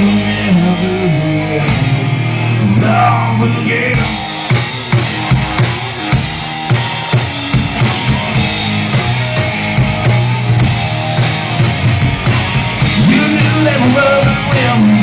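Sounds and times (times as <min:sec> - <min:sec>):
rock band playing: 0:00.0 - 0:15.0.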